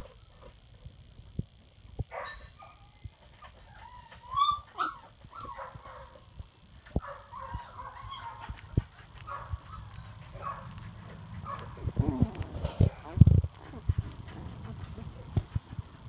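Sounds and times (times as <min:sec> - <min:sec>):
puppies whining and squeaking: 0:02.8 - 0:05.8, 0:07.3 - 0:08.8, 0:09.6 - 0:10.3, 0:11.7 - 0:15.5.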